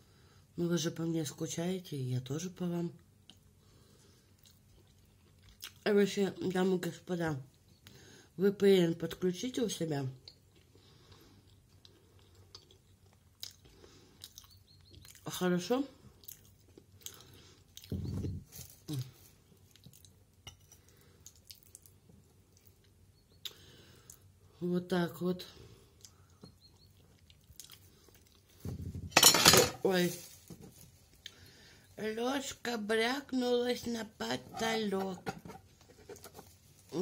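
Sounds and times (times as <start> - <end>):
person chewing with closed lips: 4.2 - 5.8, 10.2 - 15.3, 16.1 - 18.2, 18.9 - 24.3, 25.9 - 28.6
eating noises: 10.2 - 15.3
small mouth clicks: 22.6 - 24.2
metal spoon clattering: 29.2 - 29.8.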